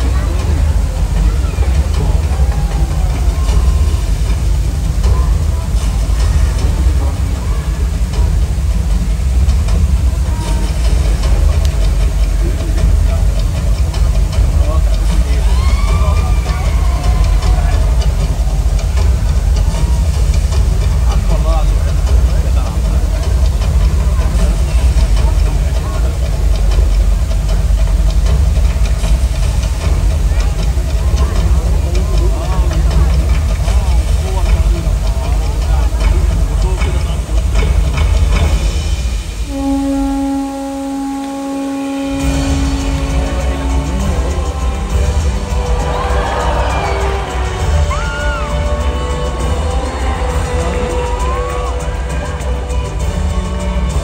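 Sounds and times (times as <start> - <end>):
crowd chatter: 0.0 - 54.0
water pouring onto a pool: 0.1 - 39.5.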